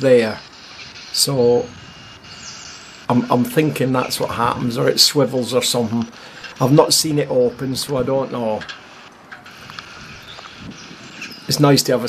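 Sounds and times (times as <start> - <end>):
wind noise on microphone: 0.8 - 2.9, 9.4 - 11.8
faint ticks: 8.6 - 10.6.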